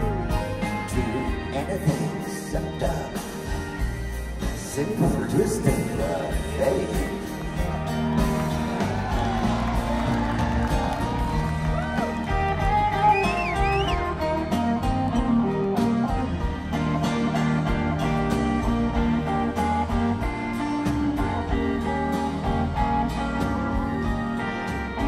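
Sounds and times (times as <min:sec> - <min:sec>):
live band playing instrumental: 0:00.0 - 0:25.0.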